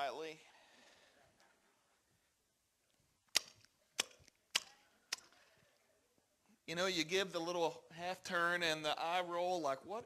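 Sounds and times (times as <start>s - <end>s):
mouth clicks and lip smacks: 2.8s - 5.6s.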